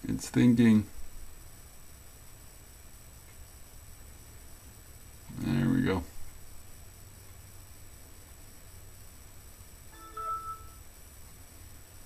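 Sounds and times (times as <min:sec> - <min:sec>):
faint low hum: 0:00.0 - 0:12.0
electronic startup chime: 0:09.9 - 0:10.8.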